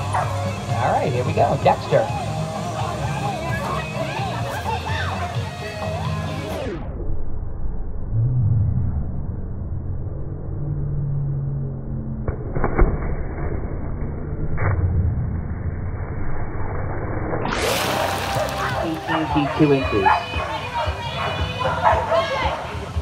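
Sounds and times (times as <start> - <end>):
slowed-down muffled low rumble: 6.7 - 17.6
dog splashing into water: 17.5 - 19.1.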